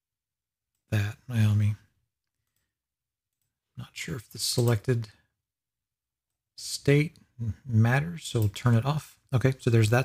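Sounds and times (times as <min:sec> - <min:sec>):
man speaking: 0:00.9 - 0:02.0, 0:03.8 - 0:05.2, 0:06.6 - 0:10.0.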